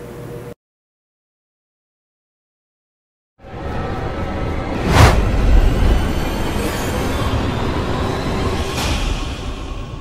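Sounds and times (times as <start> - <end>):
music: 3.4 - 10.0.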